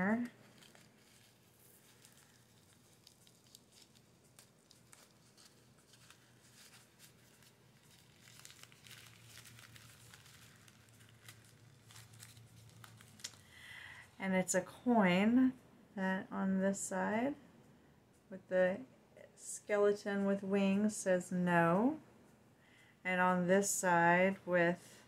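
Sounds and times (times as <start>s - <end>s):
faint rustling: 0.0s - 14.2s.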